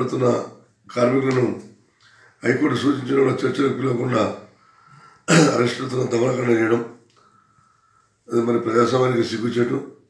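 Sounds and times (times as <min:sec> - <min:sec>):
man talking: 0:00.0 - 0:01.6, 0:02.4 - 0:04.5, 0:05.3 - 0:07.0, 0:08.3 - 0:10.0.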